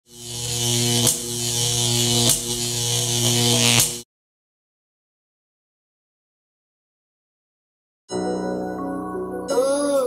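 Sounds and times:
loud electric buzz with hiss: 0:00.0 - 0:04.0.

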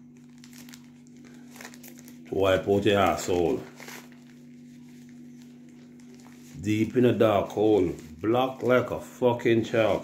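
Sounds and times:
plastic pack crinkling: 0:00.0 - 0:10.0.

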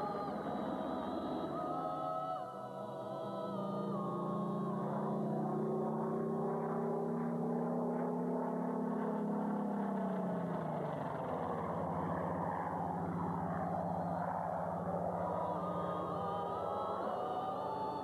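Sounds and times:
propeller aircraft engines droning: 0:00.0 - 0:18.0.

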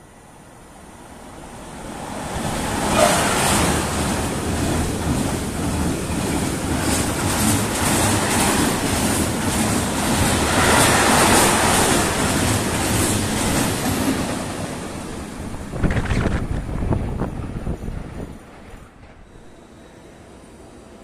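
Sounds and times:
freight train wheels clattering: 0:02.9 - 0:14.8.

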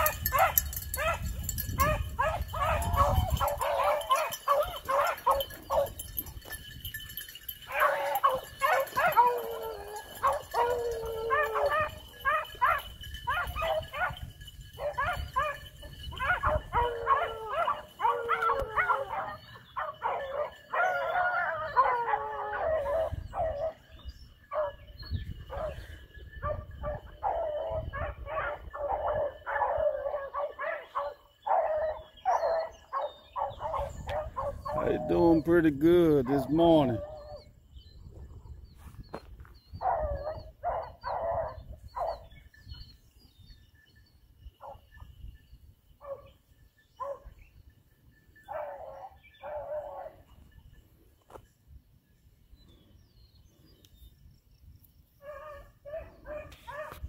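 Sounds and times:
dogs howling: 0:00.0 - 0:06.0, 0:07.7 - 0:14.2, 0:14.8 - 0:23.9, 0:26.4 - 0:35.5, 0:36.2 - 0:37.5, 0:39.8 - 0:42.2, 0:48.5 - 0:50.3
dogs barking: 0:00.0 - 0:06.3, 0:07.6 - 0:35.5, 0:39.8 - 0:42.3, 0:46.0 - 0:46.4, 0:47.0 - 0:47.4, 0:48.4 - 0:50.4, 0:55.2 - 0:57.0.

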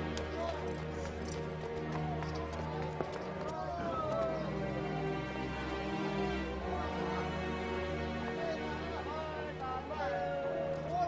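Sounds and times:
background music with low held tones: 0:00.0 - 0:11.0
murmur of voices: 0:00.0 - 0:11.0.

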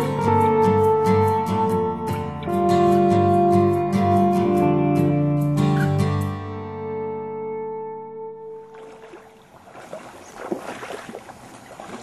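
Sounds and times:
stream water gurgling: 0:08.6 - 0:12.0.

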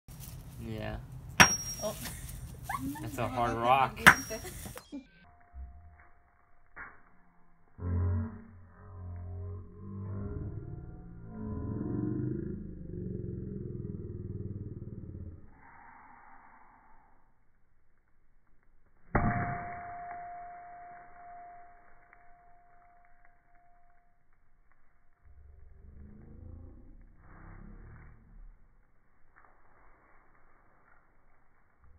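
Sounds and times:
brief high ring: 0:19.3 - 0:24.1.

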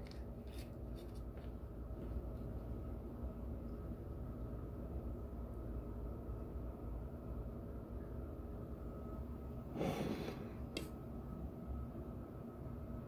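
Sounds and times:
room hum with faint tones: 0:00.0 - 0:13.0
rush of air-like noise: 0:09.0 - 0:11.5.

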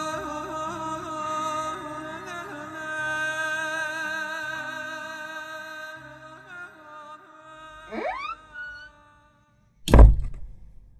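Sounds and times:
held tones sweeping upward: 0:07.9 - 0:08.9
loud deep hit: 0:09.9 - 0:10.6.

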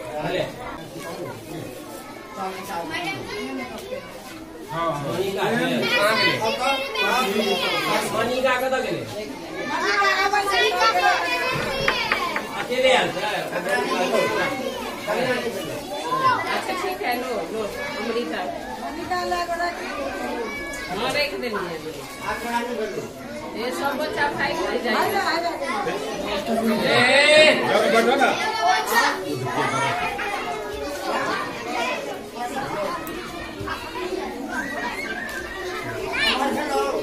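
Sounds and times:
children talking in a crowd: 0:00.0 - 0:37.0.

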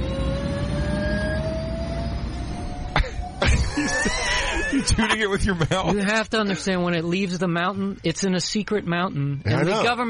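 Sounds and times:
turbine whine rising in pitch: 0:00.0 - 0:04.8
helicopter engine rumble: 0:00.0 - 0:05.0.

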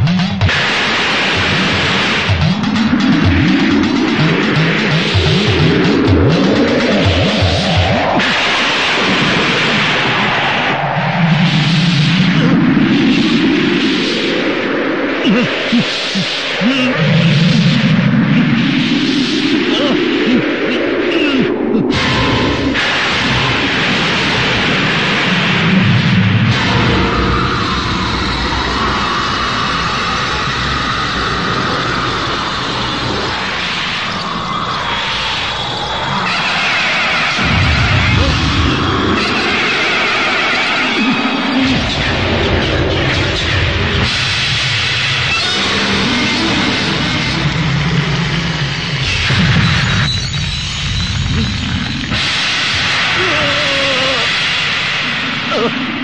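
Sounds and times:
rushing wind and blowing sand: 0:00.0 - 0:56.0.

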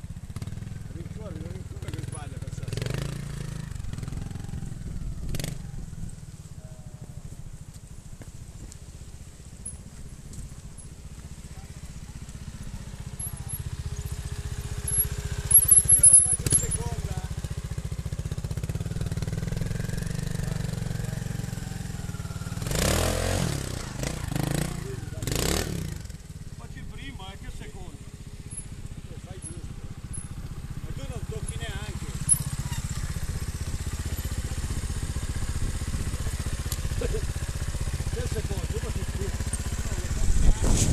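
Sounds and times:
motorcycle engine revving: 0:00.0 - 0:40.9
motorcycle engine running: 0:00.0 - 0:40.9.

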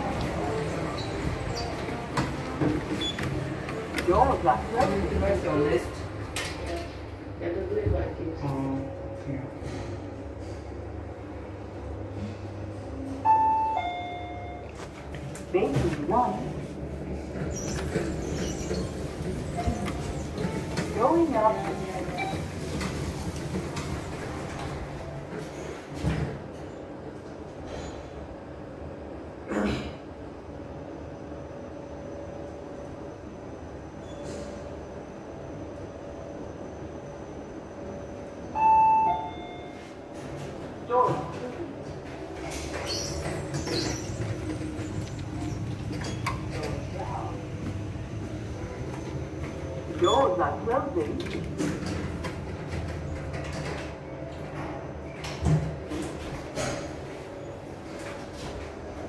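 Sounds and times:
lift humming: 0:00.0 - 0:25.7, 0:34.5 - 0:59.0
two-tone lift arrival chime: 0:13.2 - 0:14.7, 0:38.5 - 0:39.9.

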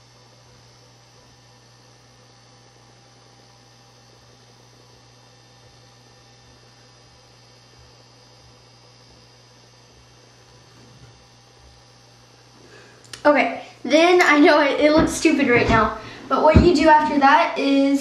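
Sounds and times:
low electrical hum: 0:00.0 - 0:18.0.

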